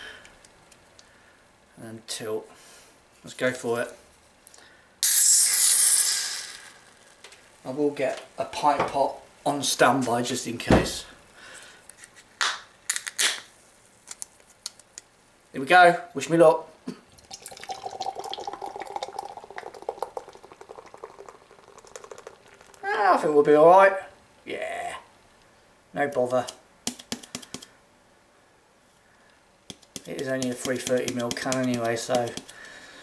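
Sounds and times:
hiss of pressurised gas: 0:05.0 - 0:07.0
beer pouring into a glass: 0:17.1 - 0:22.9.

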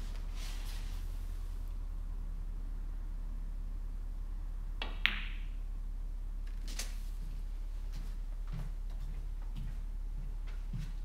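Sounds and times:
low electrical hum: 0:00.0 - 0:11.0
soft footsteps: 0:07.0 - 0:11.0.

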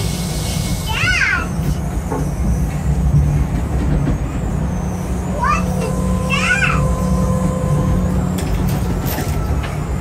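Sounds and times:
ride car rumbling on steel track: 0:00.0 - 0:10.0.

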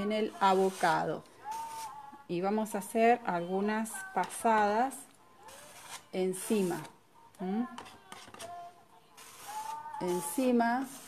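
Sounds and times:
palette knife scraping canvas: 0:00.2 - 0:02.0, 0:05.4 - 0:06.9, 0:07.8 - 0:11.0.

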